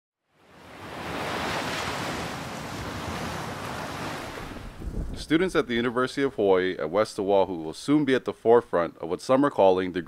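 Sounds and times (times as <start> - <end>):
steady rushing noise: 2.4 - 5.8.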